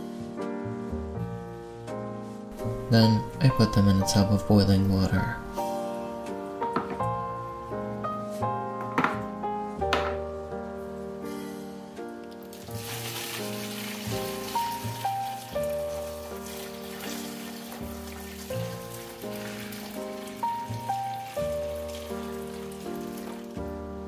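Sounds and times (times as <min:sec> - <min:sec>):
piano music: 0:00.0 - 0:24.0
water pouring into plastic tub: 0:12.4 - 0:23.8.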